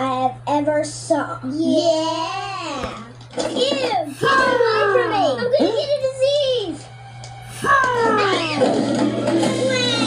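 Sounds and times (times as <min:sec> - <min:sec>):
background music: 0:06.2 - 0:10.0.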